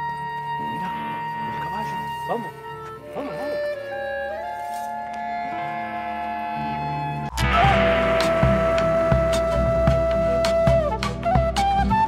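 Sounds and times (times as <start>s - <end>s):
film score music: 0.0s - 12.0s
percussion strikes: 7.3s - 11.6s.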